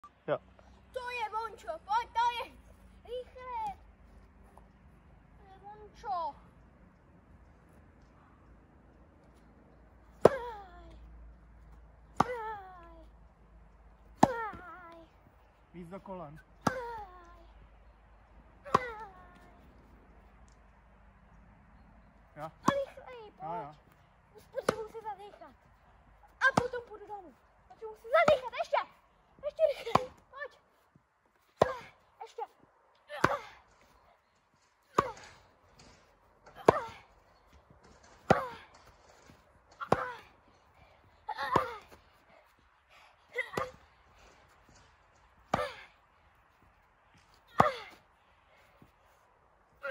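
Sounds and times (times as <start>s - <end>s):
tennis ball hit: 10.2s - 10.6s, 12.1s - 12.5s, 18.6s - 19.1s, 22.5s - 23.1s, 24.5s - 25.3s
tennis racket hitting ball: 12.1s - 12.5s, 18.7s - 19.1s, 22.6s - 23.2s, 24.4s - 25.4s, 34.9s - 37.1s, 39.7s - 40.2s.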